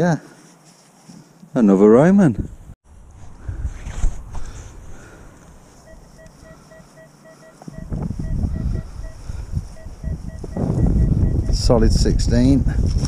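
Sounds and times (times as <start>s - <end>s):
metal detector beeping: 5.8s - 11.7s.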